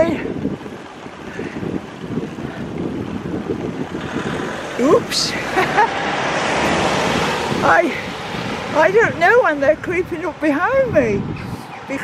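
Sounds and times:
motor vehicle approaching: 0.0s - 12.0s
wind and road noise: 0.0s - 12.0s.

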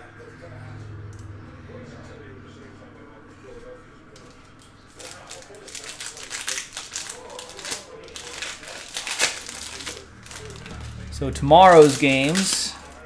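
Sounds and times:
foil wrapper crinkling and tearing: 4.9s - 13.0s.

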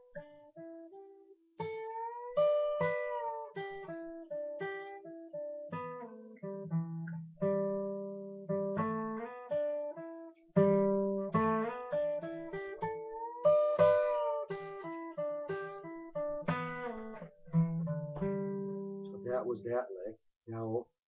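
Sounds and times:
acoustic guitar blues lick: 0.0s - 19.5s.

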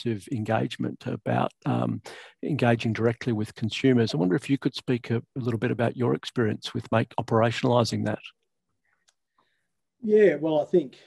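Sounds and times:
man speaking: 0.0s - 8.3s, 10.0s - 11.0s
faint clicks: 8.4s - 9.5s.

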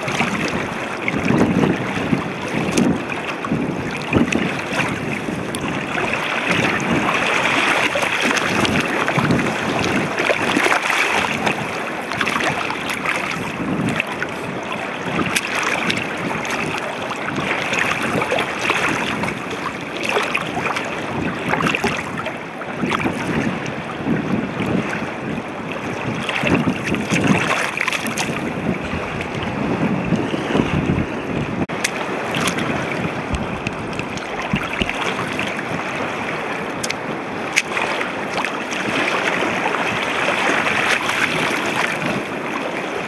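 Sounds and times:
sneakers splashing through water: 0.0s - 22.2s, 26.1s - 29.5s, 31.6s - 42.3s
water washing: 0.0s - 30.9s, 31.6s - 43.0s.

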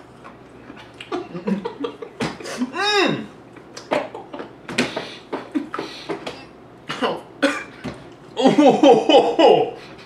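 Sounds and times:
men laughing: 1.1s - 2.7s, 8.4s - 9.8s
men coughing: 5.3s - 7.8s.

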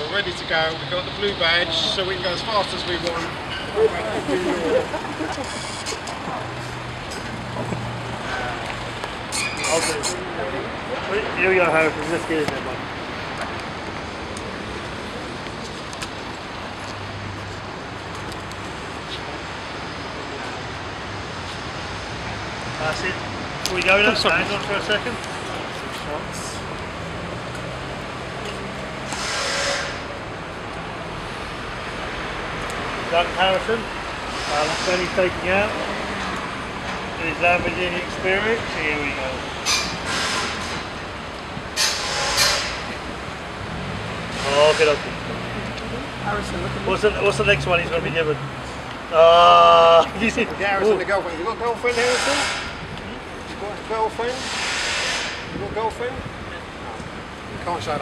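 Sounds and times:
street traffic noise: 0.0s - 58.0s
short hissing bursts: 29.1s - 30.0s, 54.4s - 55.4s.

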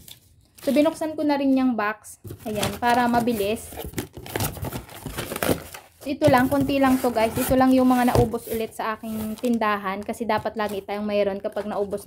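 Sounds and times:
cardboard crackles: 0.0s - 12.0s
cardboard rustling and scraping: 0.0s - 12.0s.

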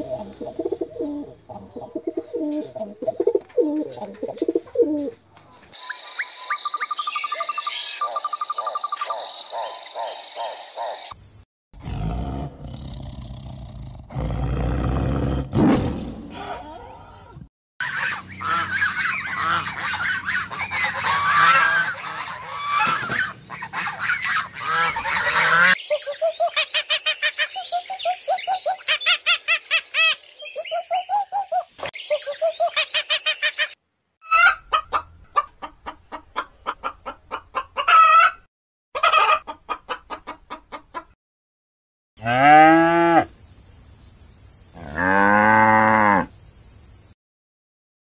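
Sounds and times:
gulls calling: 17.8s - 33.8s.

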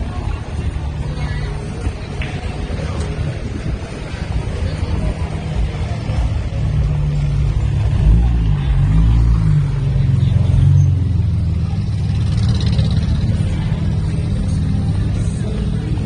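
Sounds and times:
vehicle engine passing: 2.4s - 16.0s.

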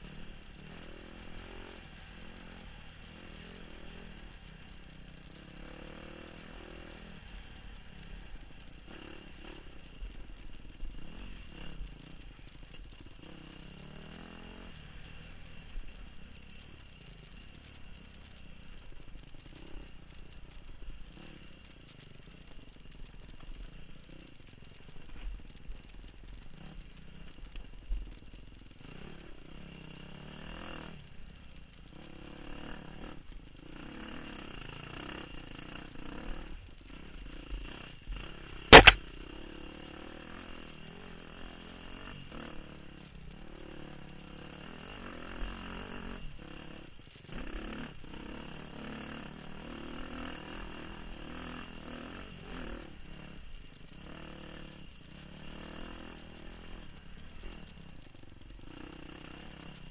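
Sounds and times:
dirt bike engine revving: 0.0s - 22.4s, 31.8s - 59.9s.

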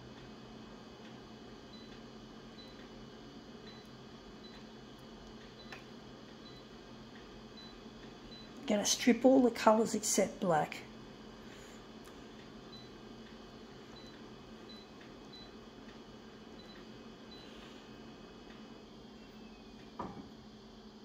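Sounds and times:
copier humming: 0.0s - 21.0s
soft knock: 20.0s - 20.3s.

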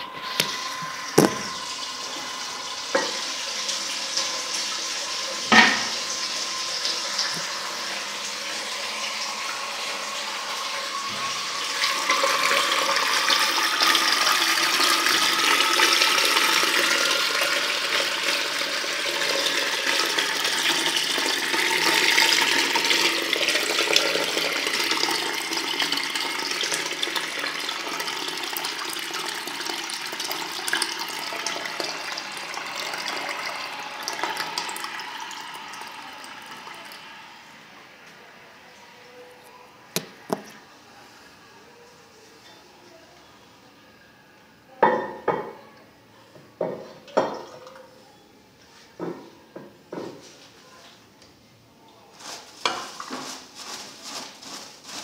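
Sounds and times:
toilet cistern refilling: 0.0s - 38.7s, 47.0s - 47.9s
rising tone of filling cistern: 0.0s - 44.7s.

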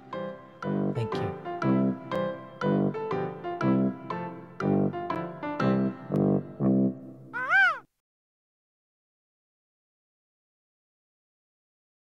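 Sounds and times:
gull cry: 7.4s - 7.9s.

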